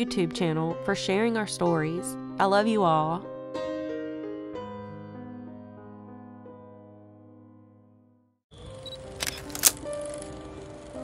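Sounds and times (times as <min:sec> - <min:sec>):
piano music: 0:00.0 - 0:11.0
music with held tones: 0:08.5 - 0:11.0
sharp clicks: 0:08.9 - 0:09.9.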